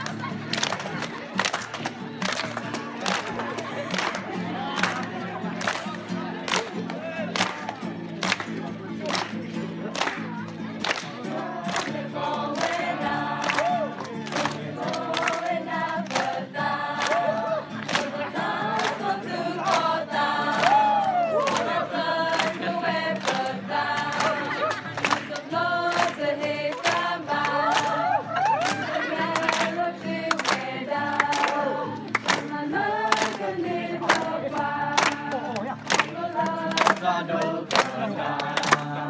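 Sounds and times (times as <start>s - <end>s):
hand claps in steady beat: 0.0s - 39.0s
group of young voices singing: 11.2s - 39.0s.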